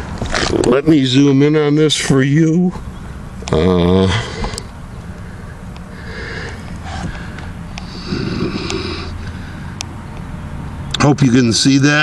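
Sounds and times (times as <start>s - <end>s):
steady low hum: 0.0s - 12.0s
soft breathing: 4.1s - 9.9s.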